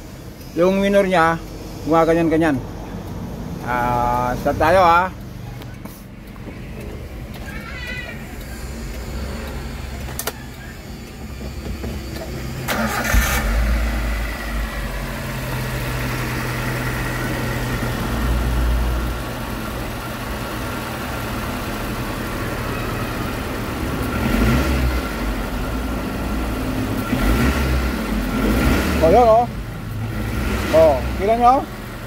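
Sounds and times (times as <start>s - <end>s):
car engine idling rough: 0.0s - 32.0s.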